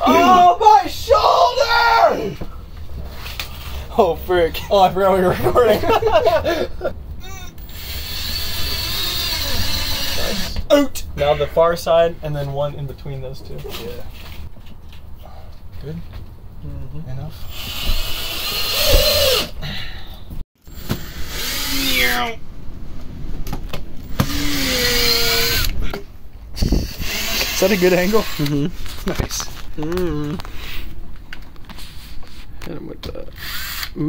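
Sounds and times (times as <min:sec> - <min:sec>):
steady whirring noise: 0:00.0 - 0:34.0
men laughing: 0:05.0 - 0:07.0
cordless drill driving a screw: 0:07.6 - 0:10.6, 0:17.4 - 0:19.5, 0:20.7 - 0:22.2, 0:24.1 - 0:25.8, 0:26.8 - 0:28.5, 0:33.4 - 0:34.0.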